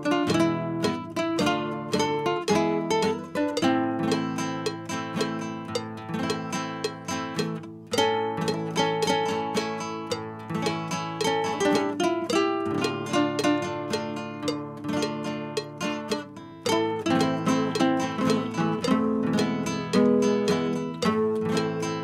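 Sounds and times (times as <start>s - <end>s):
classical guitars playing: 0.0s - 22.0s.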